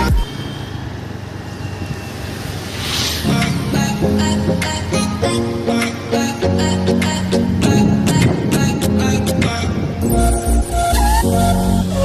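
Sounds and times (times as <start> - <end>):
hiss: 2.5 - 3.5
tyre and wind noise: 7.5 - 11.2.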